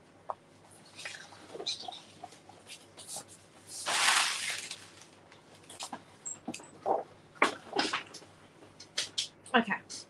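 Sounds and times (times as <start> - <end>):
paper crinkling and rustling: 0.9 - 6.0.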